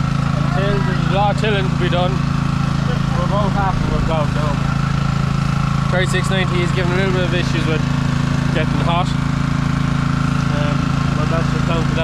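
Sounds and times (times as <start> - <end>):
engine idling: 0.0 - 12.0.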